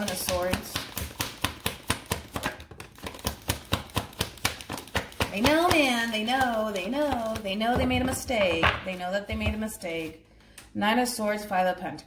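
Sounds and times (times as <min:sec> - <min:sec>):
cards being shuffled: 0:00.0 - 0:07.5.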